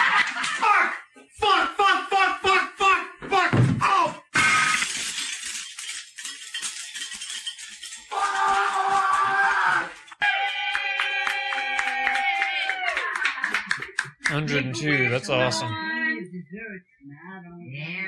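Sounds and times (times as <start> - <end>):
crash of something breaking: 4.4 - 6.2.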